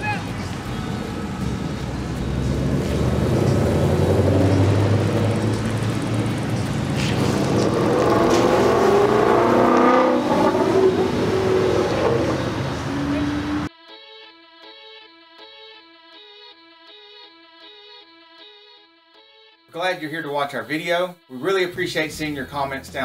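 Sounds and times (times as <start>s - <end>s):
car engines rumbling: 0.0s - 13.7s
car accelerating away: 0.4s - 13.7s.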